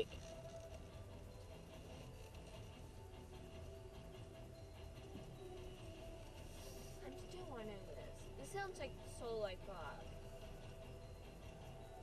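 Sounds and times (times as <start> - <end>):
faint music from car radio: 0.0 - 12.0.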